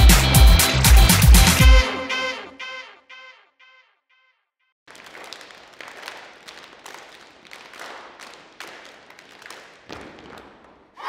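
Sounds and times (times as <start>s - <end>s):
children clapping hands: 0.0s - 1.8s, 4.9s - 11.0s.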